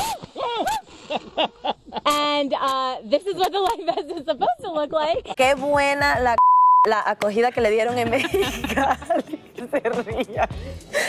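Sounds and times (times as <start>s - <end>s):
woman speaking: 2.1s - 8.4s
censor bleep: 6.4s - 6.9s.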